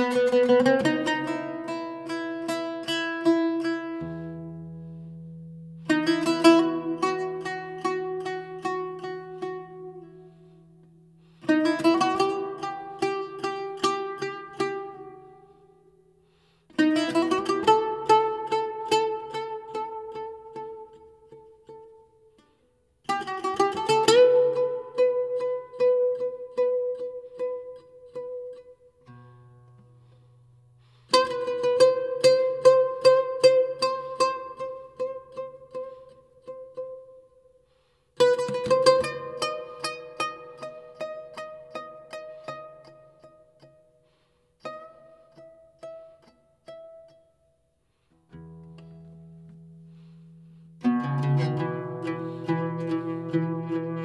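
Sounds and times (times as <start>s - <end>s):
plucked string instrument: 0.0s - 54.0s.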